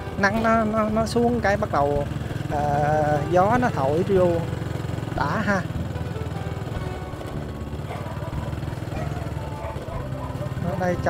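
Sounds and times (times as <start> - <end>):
motorbike engine running: 0.0 - 11.0.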